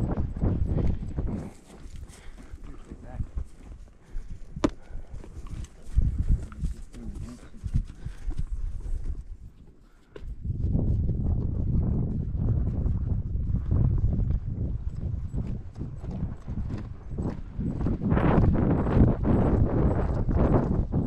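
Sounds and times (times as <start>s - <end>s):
horse hoofbeats on sandy ground: 0.0s - 21.0s
wind rumbling on microphone: 0.0s - 21.0s.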